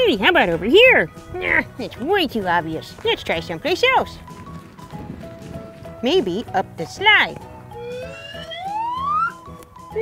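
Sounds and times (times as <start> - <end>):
light background music: 0.0 - 10.0
whistle tone sliding upward: 7.8 - 10.0.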